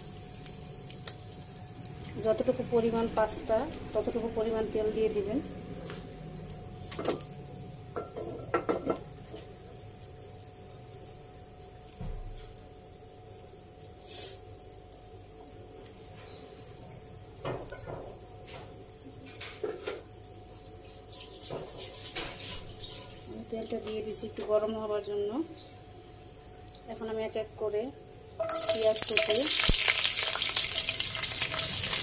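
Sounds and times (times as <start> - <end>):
cookware and utensils clinking: 8.0 - 9.0, 28.4 - 29.6.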